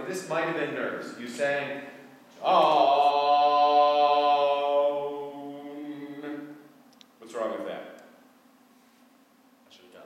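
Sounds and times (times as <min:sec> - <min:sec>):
man singing a long held note: 0:02.3 - 0:06.7.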